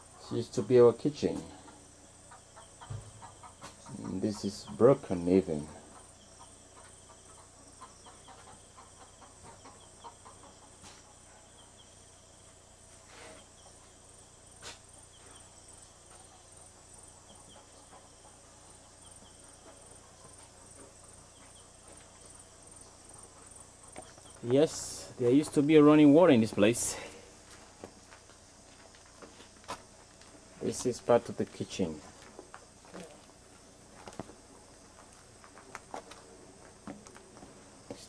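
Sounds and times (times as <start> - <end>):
insects chirping: 0.0 - 38.0.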